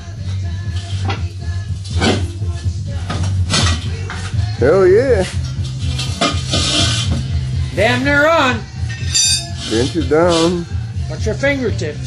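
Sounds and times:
music: 0:00.0 - 0:12.0
tools clanking on steel rim: 0:05.4 - 0:07.2.

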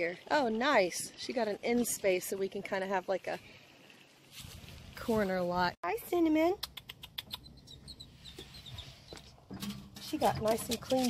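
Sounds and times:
dog claws on metal steps: 0:09.3 - 0:11.0.

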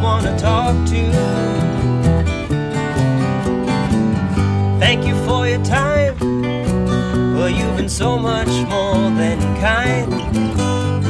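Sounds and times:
person singing: 0:00.0 - 0:01.9, 0:04.7 - 0:06.3, 0:07.1 - 0:11.0
acoustic guitars strummed and picked: 0:00.0 - 0:11.0
bass guitar line: 0:00.0 - 0:11.0.

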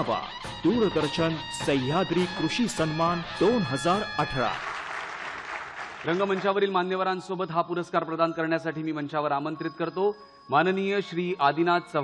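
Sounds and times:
man making announcement: 0:00.0 - 0:04.7, 0:06.0 - 0:12.0
audience applauding: 0:04.5 - 0:06.7.

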